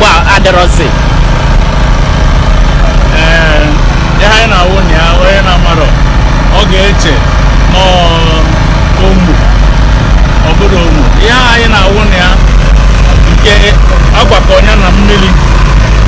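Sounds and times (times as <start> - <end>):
loud low rumble: 0.0 - 16.0
people talking and calling out: 0.0 - 16.0.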